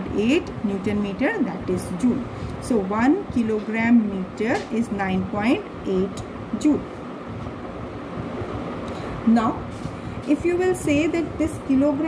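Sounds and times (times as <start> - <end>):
low rumbling hiss: 0.0 - 12.0.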